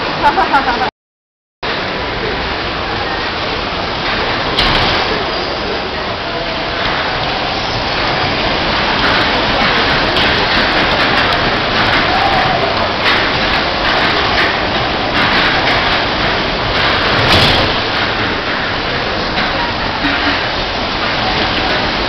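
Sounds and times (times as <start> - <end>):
dodgem cars running: 1.7 - 22.0.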